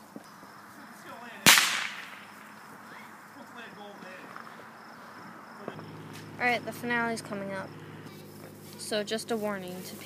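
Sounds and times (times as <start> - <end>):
firework bang: 1.4 - 2.5.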